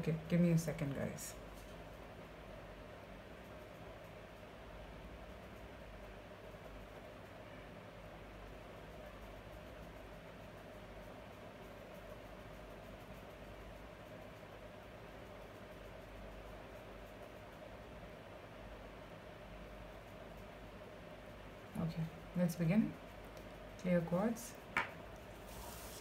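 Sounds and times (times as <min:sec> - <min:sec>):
background hiss: 0:19.1 - 0:26.0.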